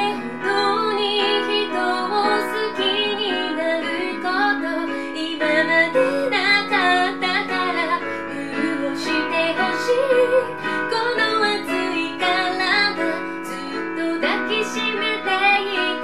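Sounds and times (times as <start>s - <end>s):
digital piano: 0.0s - 16.0s
woman singing: 0.0s - 16.0s.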